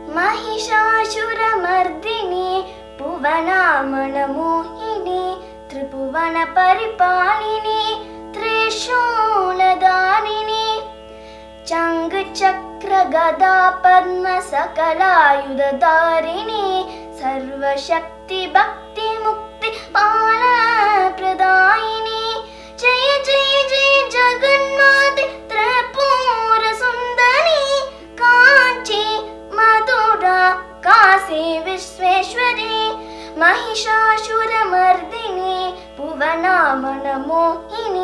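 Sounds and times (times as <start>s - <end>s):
girl singing: 0.0s - 10.9s, 11.6s - 38.0s
electronic drone: 0.0s - 38.0s.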